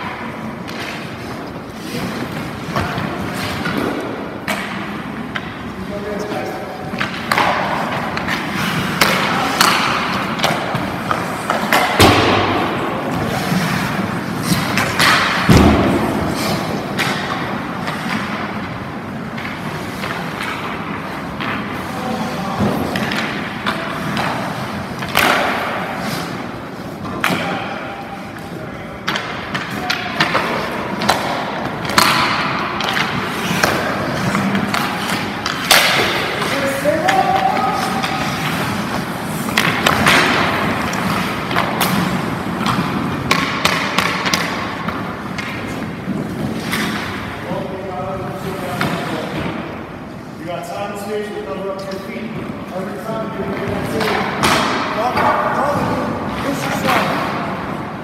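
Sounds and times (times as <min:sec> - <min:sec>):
skates scraping on ice: 0:00.0 - 0:50.4
goalie gear thudding on ice: 0:07.1 - 0:13.5, 0:14.1 - 0:18.4.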